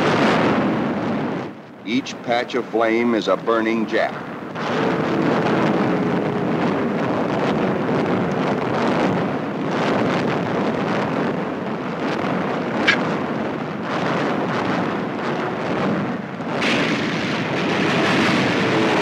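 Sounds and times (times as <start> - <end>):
sharp crack: 12.8 - 13.2, 16.6 - 19.0
anti-aircraft guns firing: 16.5 - 19.0.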